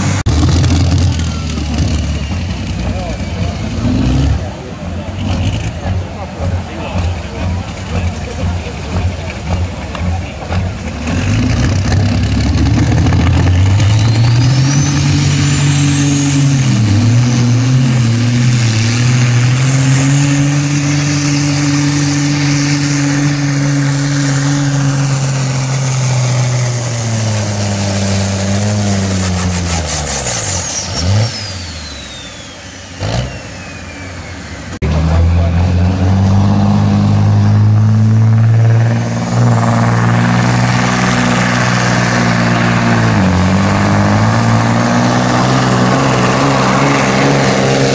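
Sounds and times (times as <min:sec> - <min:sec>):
diesel truck engine under load: 0:00.0 - 0:47.9
diesel truck revving: 0:00.0 - 0:47.9.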